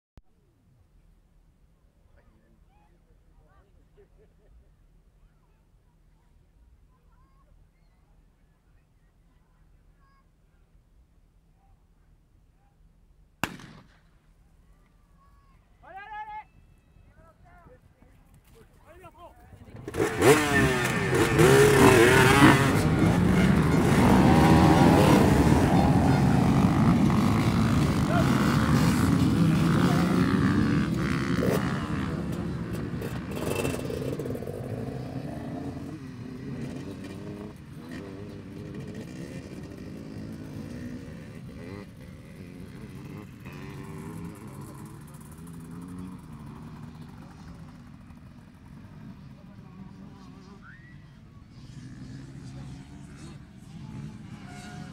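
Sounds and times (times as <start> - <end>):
motorcycles revving: 19.6 - 54.9.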